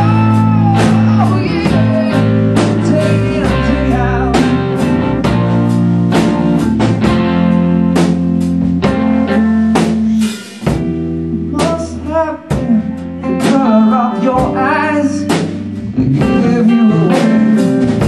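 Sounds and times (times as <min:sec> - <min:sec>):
bass guitar: 0:00.0 - 0:18.0
drum kit: 0:00.0 - 0:18.0
electric guitar: 0:00.0 - 0:18.0.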